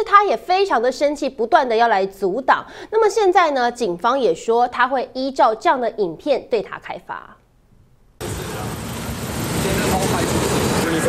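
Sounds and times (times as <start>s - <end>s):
street traffic rumble: 8.2s - 11.0s
man speaking: 9.5s - 11.0s.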